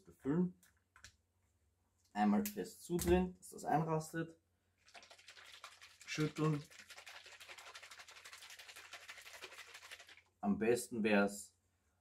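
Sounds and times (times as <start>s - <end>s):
plastic bottle shaken by hand: 4.8s - 10.4s.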